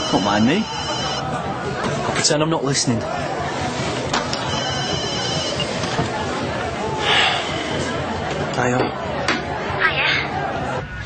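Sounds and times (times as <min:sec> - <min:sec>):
phone ringtone: 0:00.0 - 0:01.3, 0:04.5 - 0:05.7
murmur of background chatter: 0:00.0 - 0:11.0.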